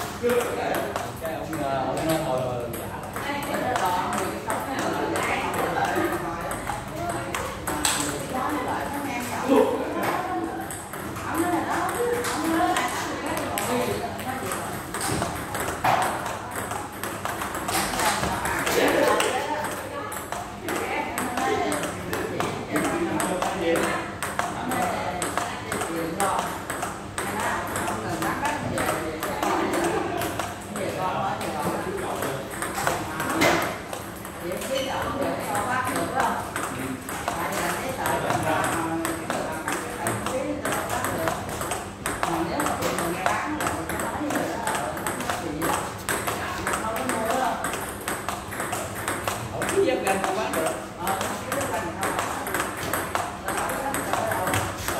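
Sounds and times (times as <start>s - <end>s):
table tennis ball clicking: 0.1s - 54.9s.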